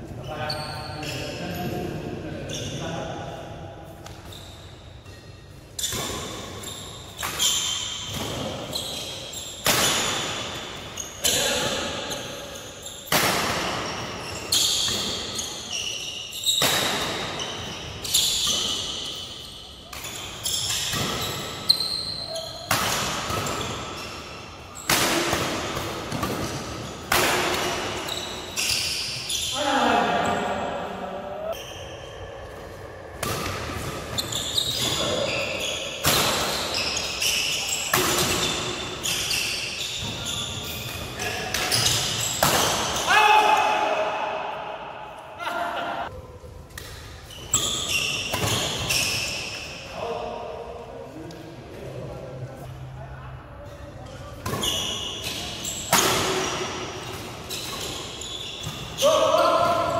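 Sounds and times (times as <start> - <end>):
rackets hitting shuttlecock: 9.6 - 11.8, 19.9 - 21.6, 22.6 - 23.8, 24.8 - 28.8, 33.2 - 35.3, 36.0 - 39.4, 40.8 - 43.1, 54.4 - 59.0.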